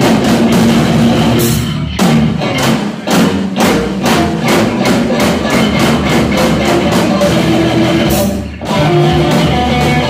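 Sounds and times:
rock band playing loud: 0.0 - 10.0.

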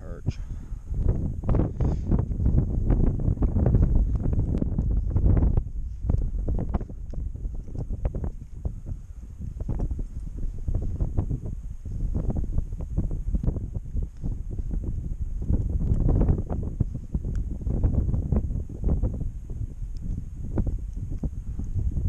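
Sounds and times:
wind buffeting microphone: 0.0 - 22.0
faint clicks: 19.9 - 20.2.

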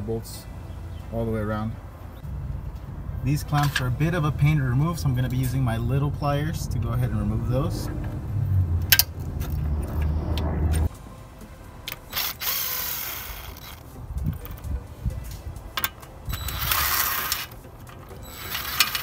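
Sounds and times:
background music: 0.0 - 19.0
metal scraping rush: 3.2 - 11.0.

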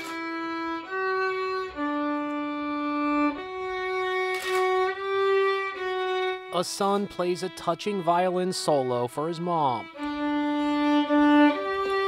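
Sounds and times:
solo violin held notes: 0.0 - 12.0.

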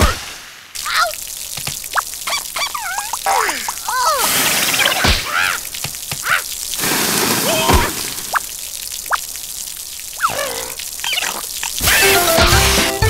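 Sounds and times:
cartoon water spraying: 0.0 - 13.0
squeaky character cries: 2.3 - 4.2, 5.2 - 5.6, 6.2 - 6.5.

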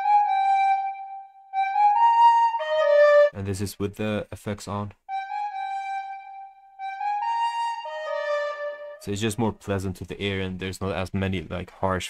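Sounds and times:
recorder playing slow melody: 0.0 - 3.4, 5.1 - 9.1.

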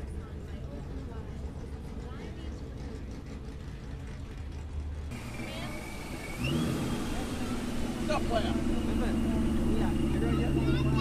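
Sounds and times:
voices in background: 0.0 - 3.8, 5.3 - 11.0
car engine idling and revving: 0.0 - 11.0.

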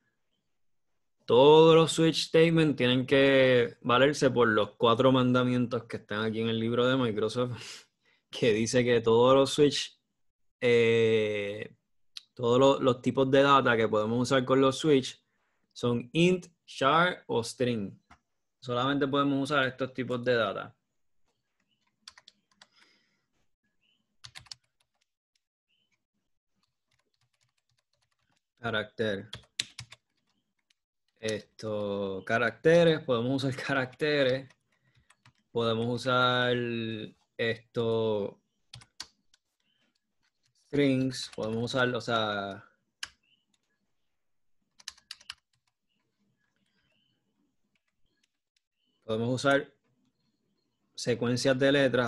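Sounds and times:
computer keyboard typing: 21.6 - 22.8, 24.2 - 25.1, 26.6 - 28.5, 29.2 - 31.8, 33.6 - 35.8, 38.7 - 41.8, 44.7 - 46.7, 47.7 - 48.7.

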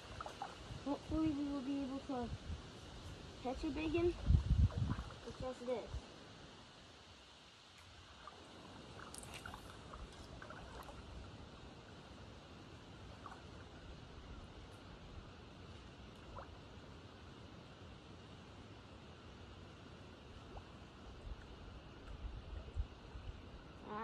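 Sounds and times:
faint outdoor background noise: 0.0 - 24.0.

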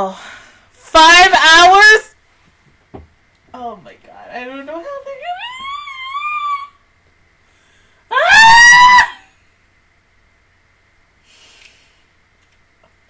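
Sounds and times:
woman screaming: 5.2 - 6.8, 8.1 - 9.3.

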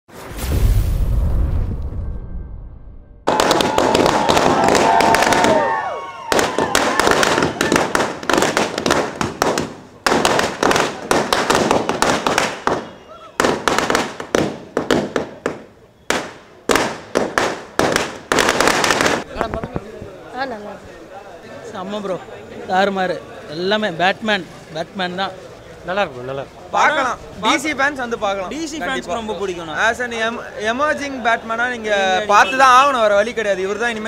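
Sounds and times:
firecrackers crackling: 3.3 - 21.0
crowd voices: 19.2 - 29.4.

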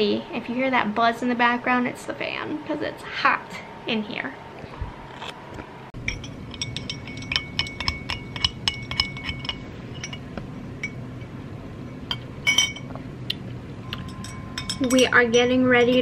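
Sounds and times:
straw clinking against glass: 6.1 - 11.0, 13.9 - 15.1.

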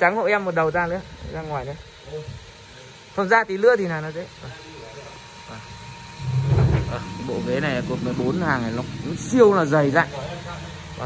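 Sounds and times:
sofa dragged across concrete: 6.2 - 7.6.

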